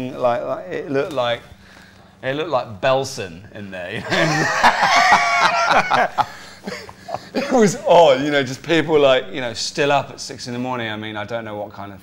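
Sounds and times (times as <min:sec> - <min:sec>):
man cackling laughter: 0:04.0 - 0:07.7.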